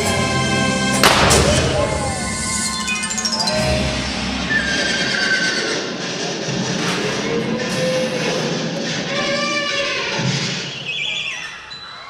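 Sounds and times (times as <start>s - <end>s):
show music: 0.0s - 5.1s
horse whinnying: 4.5s - 6.0s.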